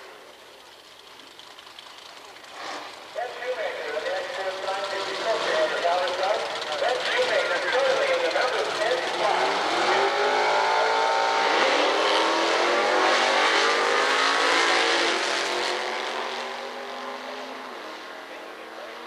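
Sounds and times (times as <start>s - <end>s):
drag car engines accelerating: 0.0s - 19.0s.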